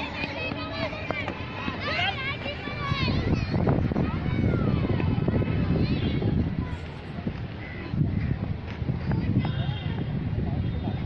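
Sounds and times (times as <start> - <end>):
children shouting and calling: 0.0 - 11.0.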